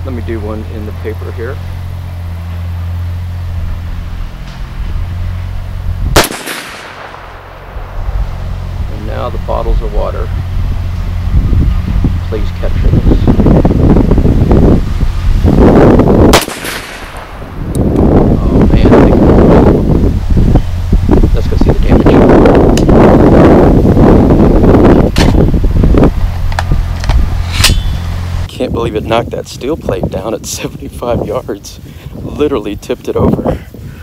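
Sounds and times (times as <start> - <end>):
wind rumbling on microphone: 0.0 - 34.0
rifle shot: 6.1 - 8.0, 16.3 - 17.5.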